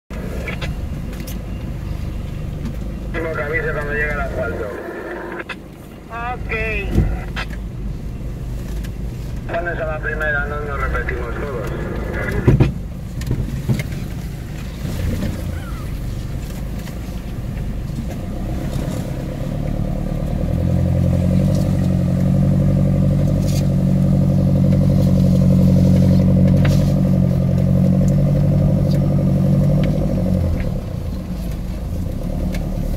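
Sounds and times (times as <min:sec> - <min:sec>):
engine running inside cab: 0:00.1 - 0:32.9
knocks of vehicle on rutted track: 0:12.4 - 0:14.1.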